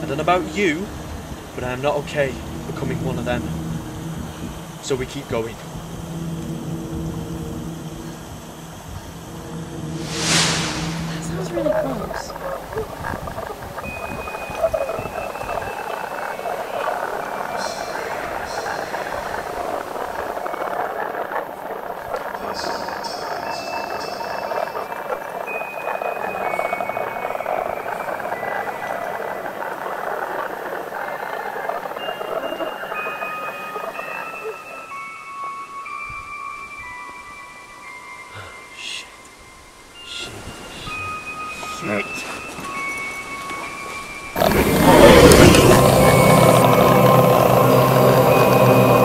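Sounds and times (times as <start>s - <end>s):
hissing noise drone: 0.0s - 34.3s, 44.3s - 49.0s
high chime-like held notes: 32.0s - 49.0s.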